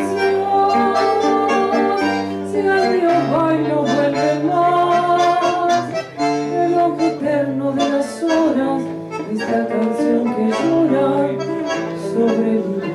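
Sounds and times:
acoustic guitar: 0:00.0 - 0:12.9
person singing: 0:00.0 - 0:12.9.

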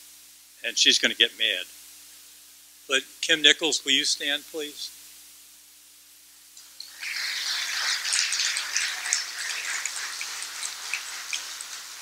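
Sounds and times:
audience applauding: 0:07.0 - 0:12.0.

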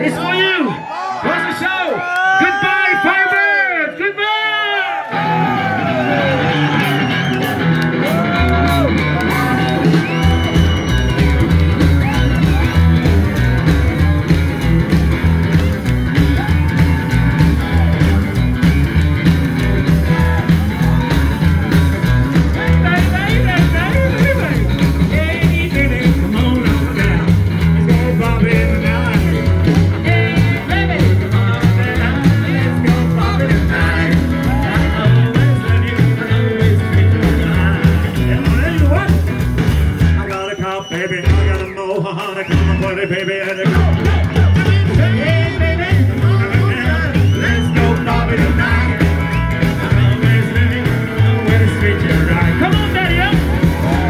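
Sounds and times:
rock band playing: 0:04.9 - 0:54.0.

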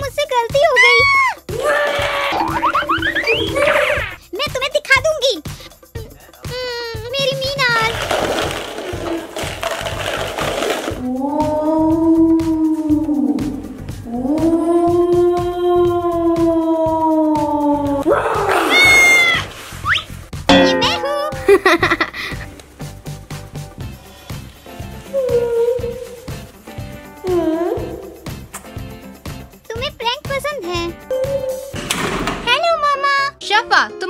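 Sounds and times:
background music with steady beat: 0:00.0 - 0:07.8, 0:08.5 - 0:18.2, 0:20.1 - 0:34.0
girl screaming: 0:00.7 - 0:04.2, 0:14.1 - 0:19.5
rising cartoon whistles: 0:02.4 - 0:04.2, 0:19.8 - 0:20.1
cat hissing and yowling: 0:14.1 - 0:19.6.

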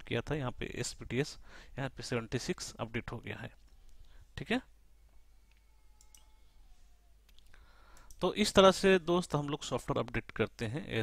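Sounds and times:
computer mouse clicks: 0:05.5 - 0:06.3, 0:07.3 - 0:08.2.

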